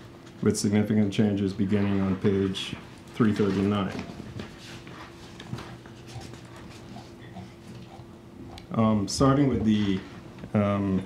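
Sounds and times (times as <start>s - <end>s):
faint steady hum: 0.0s - 11.0s.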